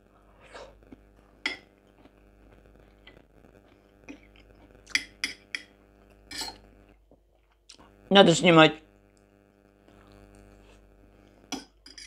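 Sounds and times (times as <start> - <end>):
fork clinking on plate: 11.6 - 12.0.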